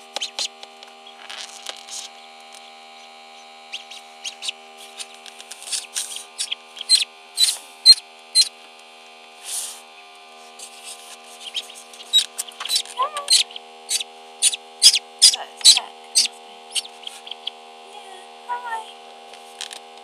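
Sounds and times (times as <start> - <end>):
electrical hum: 0.0 - 20.0
ducklings peeping: 0.1 - 1.2, 2.9 - 8.5, 11.4 - 17.6.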